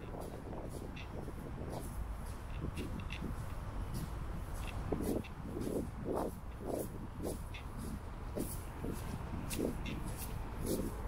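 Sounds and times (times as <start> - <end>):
footsteps on sandy path with leaves: 0.0 - 11.0.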